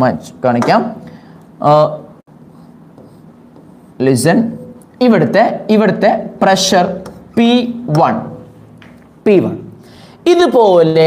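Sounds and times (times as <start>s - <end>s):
pen scratching on a board: 2.5s - 4.0s.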